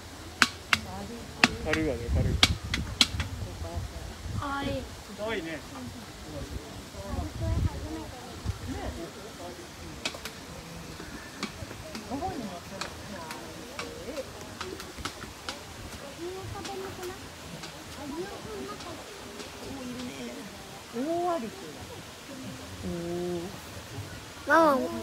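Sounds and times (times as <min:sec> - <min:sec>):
people talking: 0:00.8 - 0:25.0.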